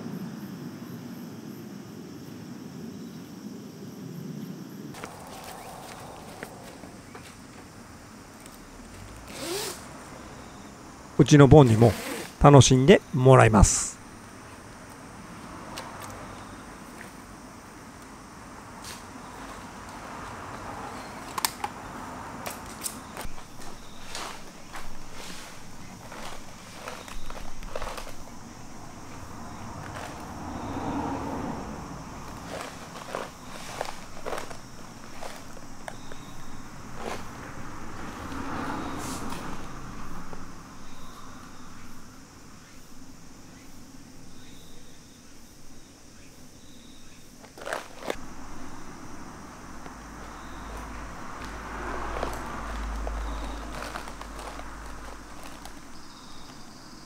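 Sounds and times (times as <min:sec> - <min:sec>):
faint outdoor background: 0:00.0 - 0:57.0
cat rustling on tent fabric: 0:23.2 - 0:30.7, 0:32.2 - 0:38.1, 0:50.4 - 0:56.7.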